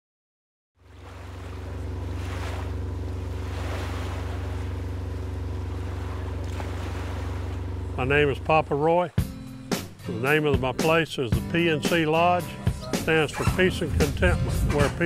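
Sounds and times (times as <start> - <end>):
boat engine humming: 0.8 - 15.0
water rushing: 0.8 - 15.0
wind: 0.8 - 15.0.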